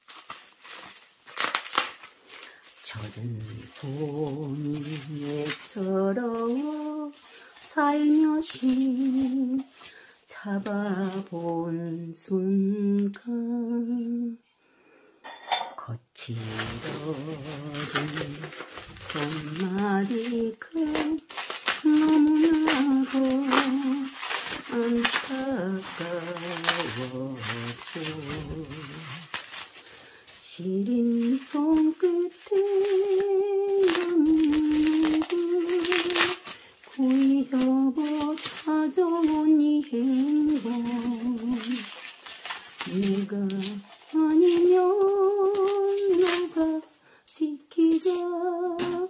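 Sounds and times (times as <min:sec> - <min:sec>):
bubble wrap crinkling: 0:00.0 - 0:14.4, 0:16.2 - 0:49.0.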